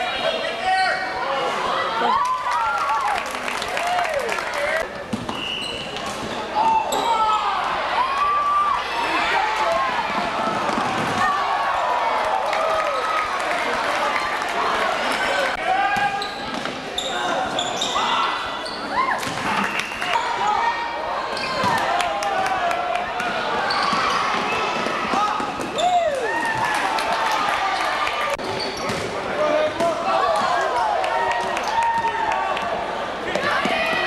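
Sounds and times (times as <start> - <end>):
spectators' voices and calls: 0.0 - 34.0
sneaker squeaks on court: 16.1 - 18.9, 23.6 - 24.9, 28.4 - 29.1.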